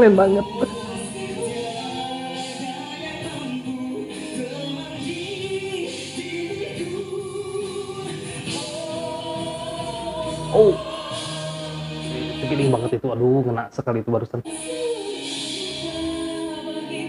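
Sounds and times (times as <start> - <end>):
man and woman singing ballad duet: 0.0 - 13.0, 14.4 - 17.0.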